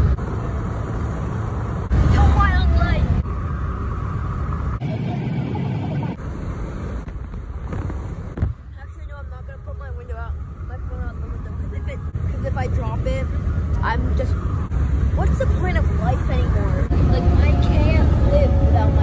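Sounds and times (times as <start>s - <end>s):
road rumble inside car: 0.0s - 19.0s
sharp thump: 7.0s - 8.6s.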